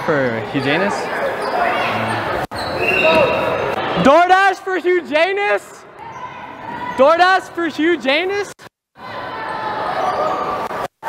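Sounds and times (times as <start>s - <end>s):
background chatter: 0.0s - 4.1s
high shoe squeak: 1.2s - 3.7s.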